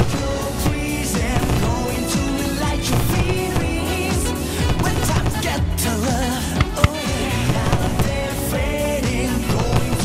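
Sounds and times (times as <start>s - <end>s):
pop song with vocals: 0.0s - 10.0s.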